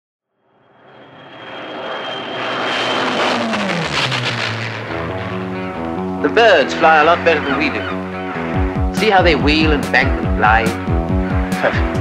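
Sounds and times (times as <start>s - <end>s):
aircraft engine fly-past: 0.4s - 12.0s
music: 4.9s - 12.0s.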